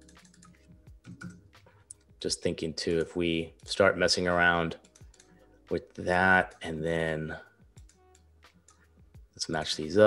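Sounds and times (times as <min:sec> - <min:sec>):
computer keyboard clicks: 0:00.0 - 0:02.1.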